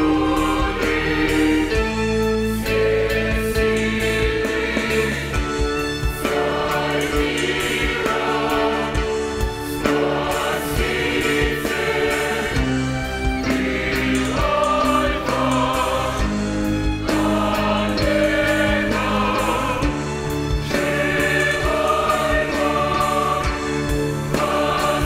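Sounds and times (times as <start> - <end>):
choir singing a hymn: 0.0 - 25.0
orchestra accompanying: 0.0 - 25.0.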